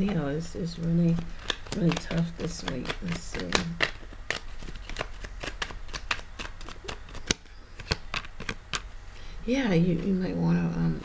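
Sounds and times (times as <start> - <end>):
cards being shuffled: 0.8 - 8.9.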